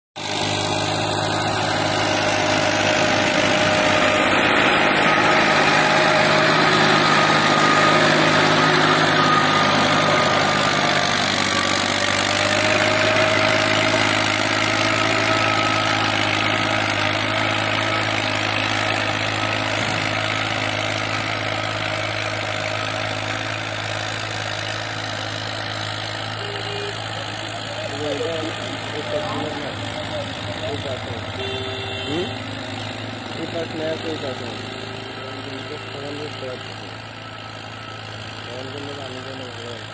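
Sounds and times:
tractor engine running: 0.2 - 39.9.

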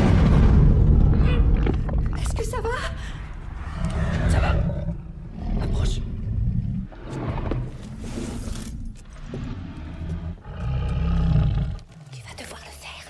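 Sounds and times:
deep low rumbling: 0.0 - 11.9.

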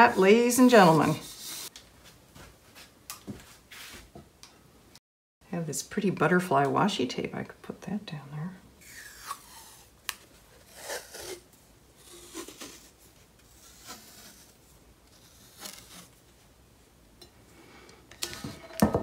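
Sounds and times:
tape peeling and paper rustling: 12.0 - 16.2.

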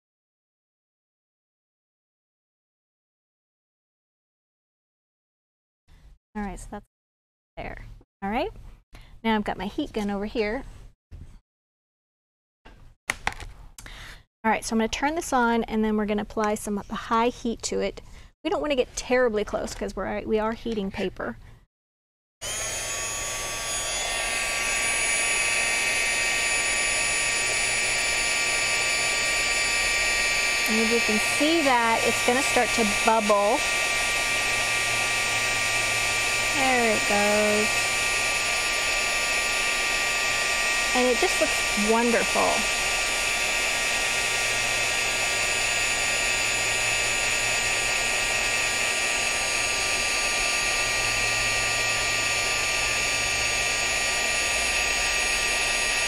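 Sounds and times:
heat gun running: 22.4 - 56.0.

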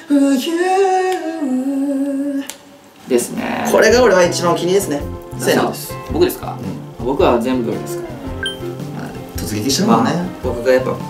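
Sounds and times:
man singing unaccompanied: 0.0 - 2.5, 9.7 - 11.0.

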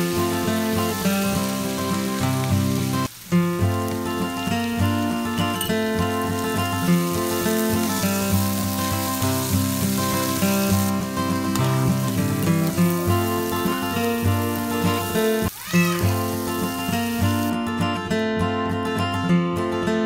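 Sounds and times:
vegetables sizzling in a pan: 0.0 - 17.6.

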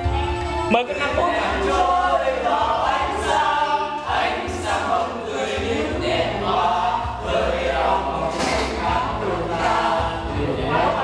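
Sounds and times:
music playing: 0.0 - 11.0
group singing into a microphone: 1.1 - 11.0.

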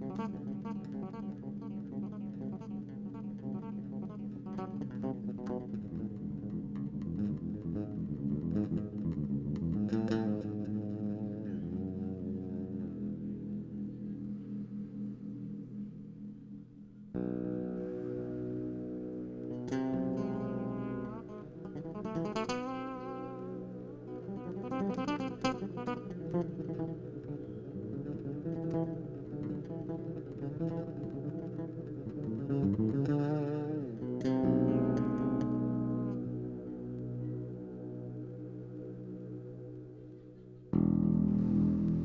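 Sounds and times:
electric bass guitar: 0.0 - 42.0.

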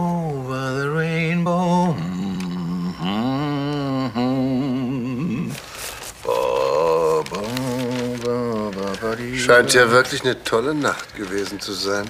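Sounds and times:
man humming: 0.0 - 9.4
newspaper rustling: 5.0 - 12.0.

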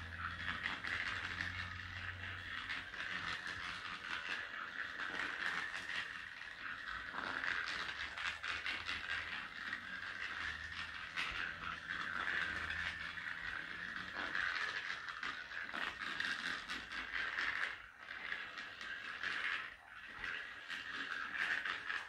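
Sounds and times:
ball rolling on wooden floor: 0.0 - 22.0
toy gear motor whirring and clicking: 0.0 - 22.0.

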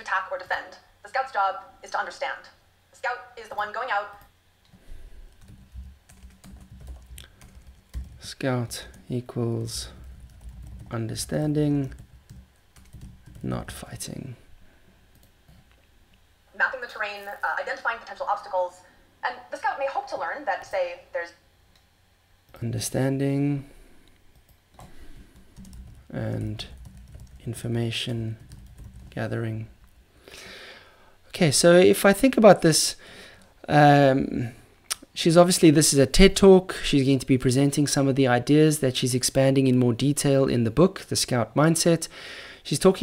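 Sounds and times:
typing on a computer keyboard: 5.3 - 8.2, 10.0 - 10.9, 11.8 - 13.5, 25.6 - 27.4, 28.4 - 29.2.

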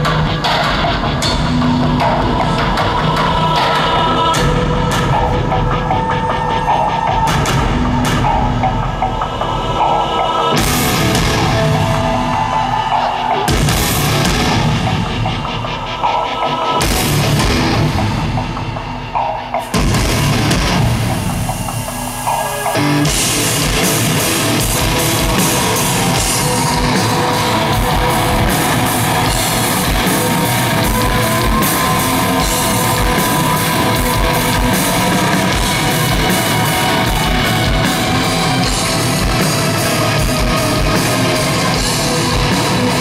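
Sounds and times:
live rock band playing: 0.0 - 43.0.

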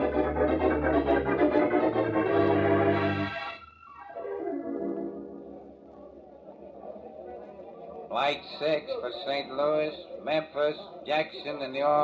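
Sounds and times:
organ chords: 0.0 - 5.9.

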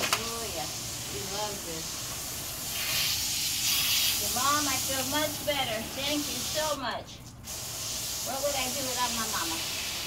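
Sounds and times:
hose nozzle spraying water: 0.0 - 10.0.

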